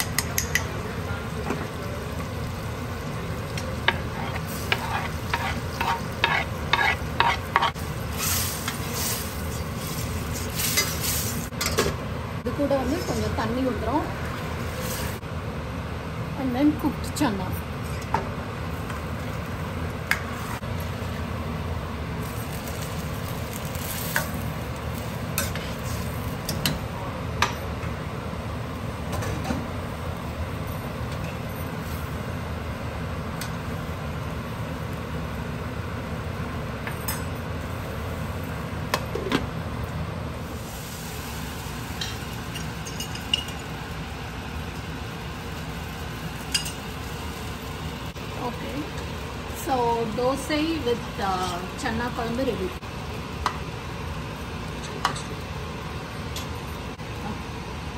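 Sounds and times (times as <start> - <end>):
metal spoon scraping a pan: 3.9 - 11.2.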